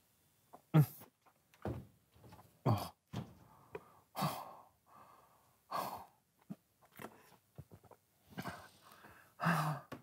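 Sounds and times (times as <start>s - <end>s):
man breathing heavily: 2.7s - 6.2s, 8.3s - 10.0s.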